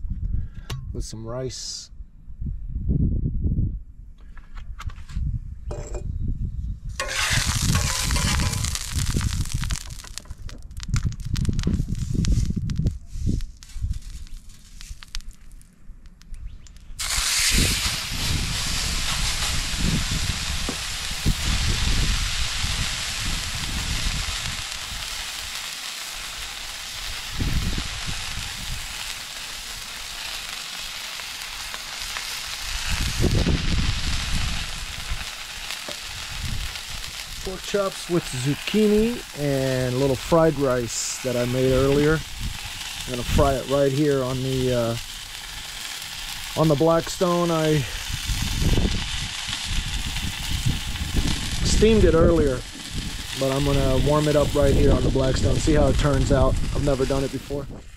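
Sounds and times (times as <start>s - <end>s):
low rumbling: 5.4s - 24.6s
meat sizzling on a griddle: 7.0s - 15.6s, 17.0s - 57.6s.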